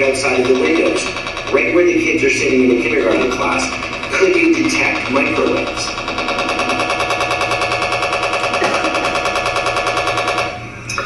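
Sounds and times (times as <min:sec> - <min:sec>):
radiation meter chattering pulse: 0:00.0 - 0:10.7.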